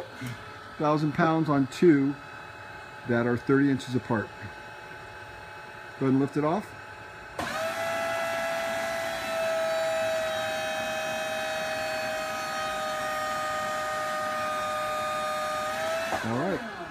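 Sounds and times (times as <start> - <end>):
hydraulic pump whining: 4.2 - 16.9.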